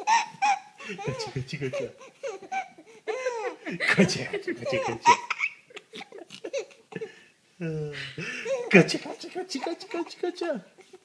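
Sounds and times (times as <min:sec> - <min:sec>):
baby laughing: 0:00.0 - 0:07.1, 0:08.2 - 0:11.0.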